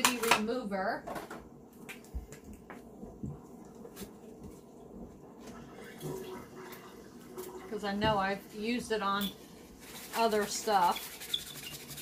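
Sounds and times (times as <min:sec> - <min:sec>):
dishwasher running: 0:03.0 - 0:12.0.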